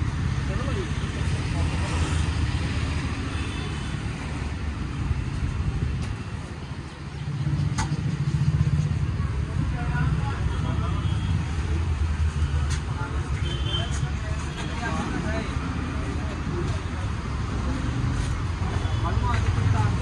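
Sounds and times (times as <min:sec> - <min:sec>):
low rumble of vehicle traffic: 0:00.0 - 0:20.0.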